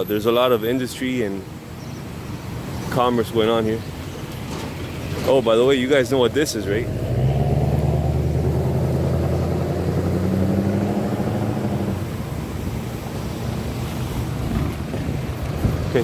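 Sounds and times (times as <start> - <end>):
van engine droning: 4.4 - 16.0.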